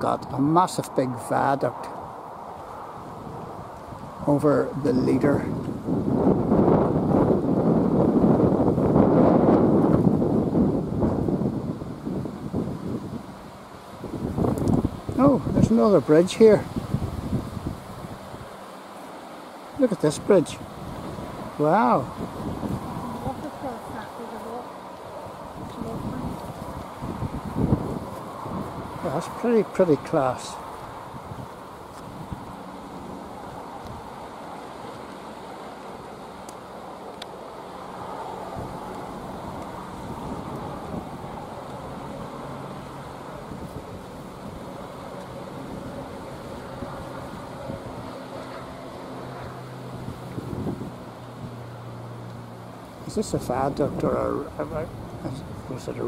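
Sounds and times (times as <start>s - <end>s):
wind buffeting microphone: 0.0s - 18.6s, 19.6s - 34.8s, 37.7s - 56.0s
steady outdoor rushing noise: 0.0s - 56.0s.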